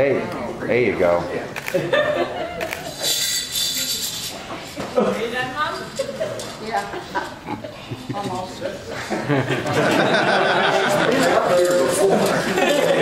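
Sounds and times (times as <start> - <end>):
murmur of people talking: 0.0 - 13.0
person laughing: 7.3 - 8.4.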